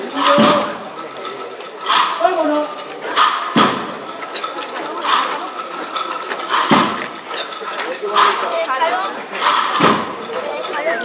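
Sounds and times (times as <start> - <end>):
crowd murmuring: 0.0 - 11.0.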